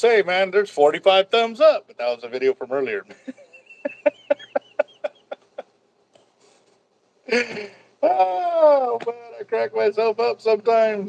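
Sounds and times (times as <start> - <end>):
man laughing hard: 3.1 - 5.7, 7.3 - 8.6.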